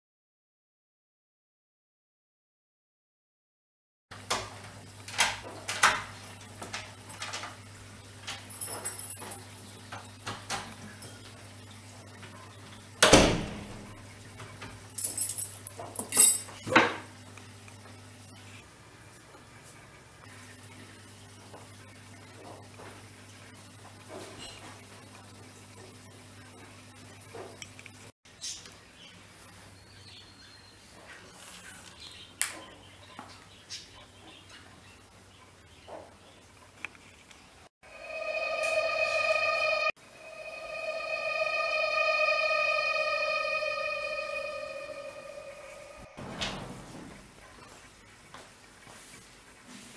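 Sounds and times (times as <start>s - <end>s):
high jingling clatter: 8.5s - 9.5s
steady synthesized tone: 37.8s - 46.6s.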